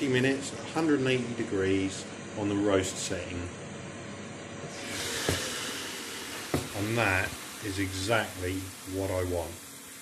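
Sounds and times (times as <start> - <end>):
hiss from cooking chamber: 4.6 - 10.0
lid knock: 6.5 - 6.8.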